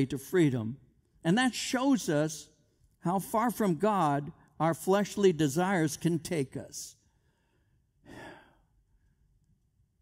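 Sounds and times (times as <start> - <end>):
man breathing: 7.1 - 9.2.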